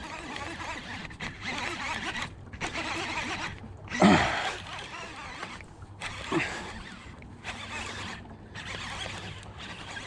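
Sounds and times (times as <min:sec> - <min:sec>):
spinning reel cranking: 0:00.0 - 0:03.6, 0:04.4 - 0:10.0.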